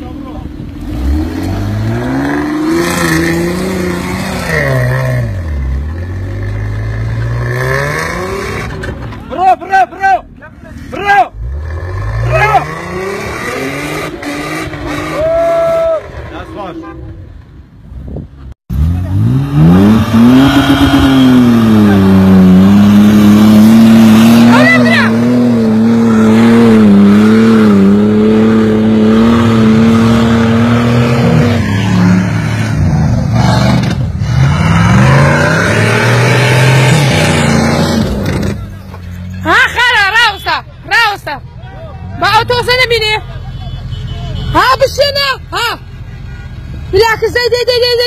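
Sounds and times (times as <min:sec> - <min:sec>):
suv engine revving hard: 0:00.8 - 0:05.5, 0:11.4 - 0:16.0, 0:18.7 - 0:38.6.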